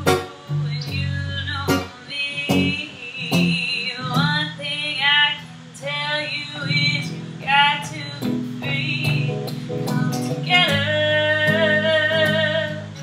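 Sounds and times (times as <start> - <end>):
electric guitar playing low riff: 0.0 - 4.6, 6.5 - 13.0
woman singing: 0.0 - 13.0.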